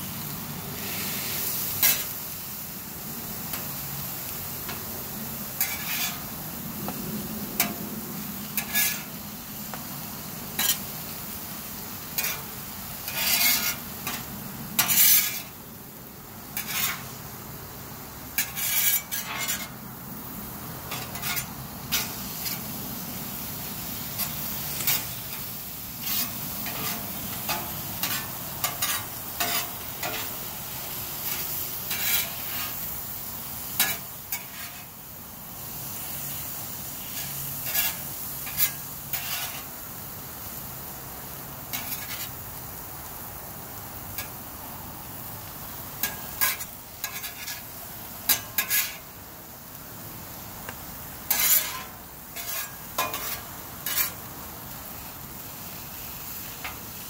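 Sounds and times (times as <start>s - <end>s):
food sizzling on a griddle: 0.0s - 57.0s
metal spatula scraping steel: 1.8s - 2.2s, 5.6s - 6.3s, 8.6s - 9.1s, 12.2s - 15.6s, 16.6s - 17.1s, 18.4s - 19.8s, 20.9s - 22.7s, 24.1s - 30.4s, 31.2s - 32.8s, 33.8s - 34.9s, 37.1s - 39.7s, 41.7s - 42.4s, 46.0s - 47.7s, 48.3s - 49.1s, 51.3s - 54.3s.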